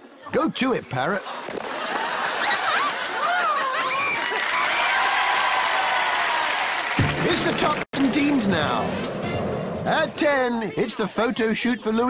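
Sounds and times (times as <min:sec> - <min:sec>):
crowd cheering and applauding: 0:03.2 - 0:08.2.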